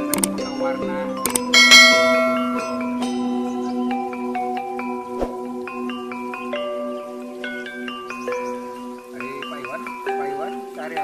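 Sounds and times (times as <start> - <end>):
ambient music with held tones: 0.0 - 11.0
loud struck chime ringing: 1.6 - 3.3.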